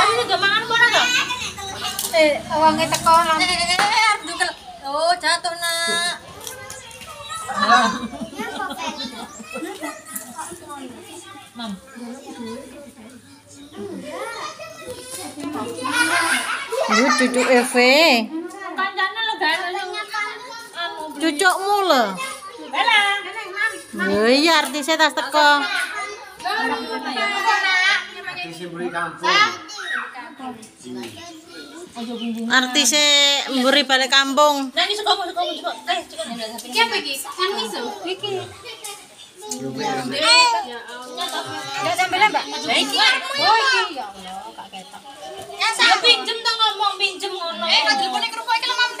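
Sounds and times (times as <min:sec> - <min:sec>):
children chattering and playing: 0:00.0 - 0:49.0
indistinct talk: 0:00.0 - 0:49.0.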